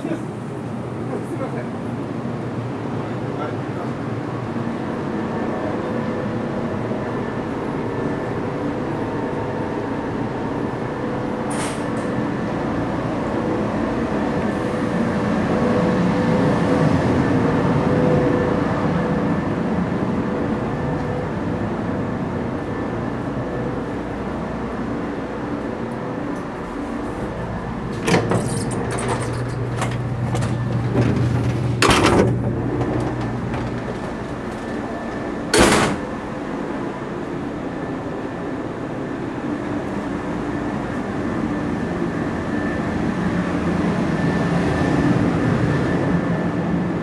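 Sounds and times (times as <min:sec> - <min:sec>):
electric train humming: 0:00.0 - 0:47.0.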